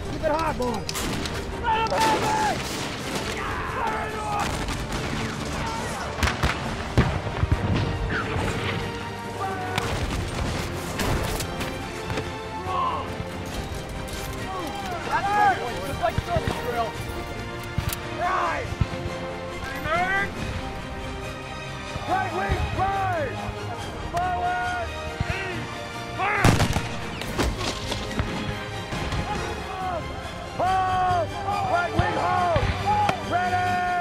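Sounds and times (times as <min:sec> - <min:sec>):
background music: 0:00.0 - 0:34.0
men shouting: 0:01.6 - 0:02.6, 0:03.2 - 0:04.6, 0:09.3 - 0:09.8, 0:29.2 - 0:34.0
rifle shots: 0:26.4 - 0:27.6.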